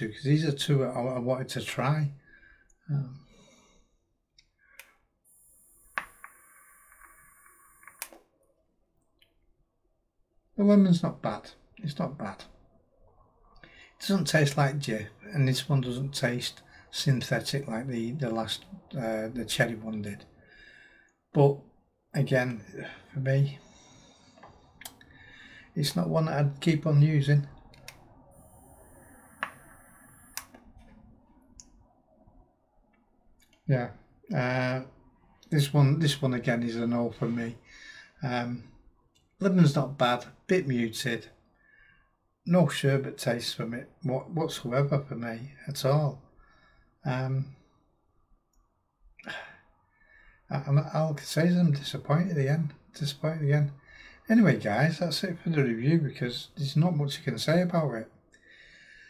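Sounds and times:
vape coil sizzling: 5.3 - 8.2, 28.3 - 30.4
faint high whine: 5.3 - 8.4, 10.6 - 21.6, 22.2 - 32.4
vape fire button clicking: 5.4 - 8.2, 27.8 - 30.6.

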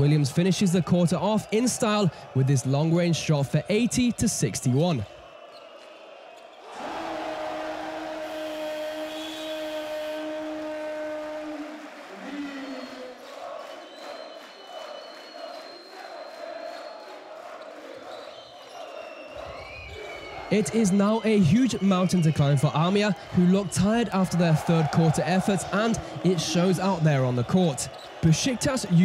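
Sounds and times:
crowd noise: 0.0 - 29.0
crowd chanting: 4.2 - 29.0
long steady horn: 6.8 - 13.0.

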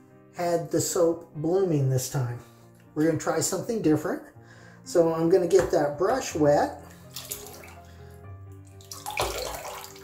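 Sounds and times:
water sloshing in sink: 6.8 - 7.9, 8.7 - 10.0
water splash: 6.9 - 7.9, 8.7 - 10.0.

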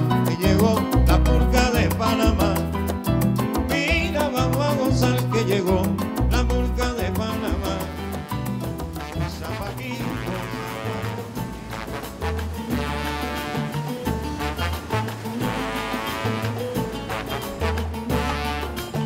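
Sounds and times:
salsa music: 0.0 - 19.0.

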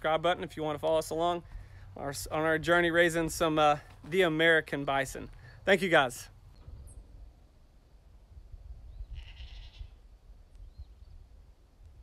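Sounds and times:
bleat-like animal call: 9.1 - 10.0.

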